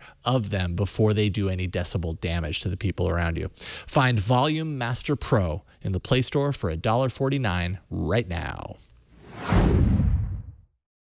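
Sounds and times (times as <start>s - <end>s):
whoosh sound effect: 9.2s - 10.6s.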